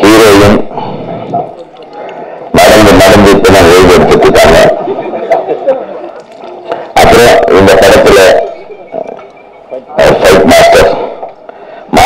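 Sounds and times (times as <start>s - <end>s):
man speaking into a microphone: 0.0s - 5.2s, 6.6s - 12.0s.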